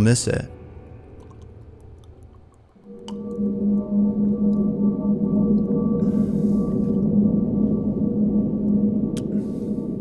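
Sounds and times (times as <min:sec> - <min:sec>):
eerie ambient music drone: 0:00.0 - 0:10.0.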